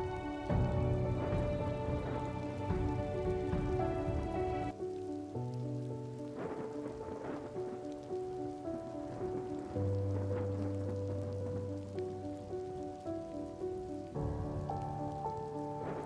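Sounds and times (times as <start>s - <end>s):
soft instrumental background music: 0.0s - 16.0s
steady rain falling: 0.0s - 16.0s.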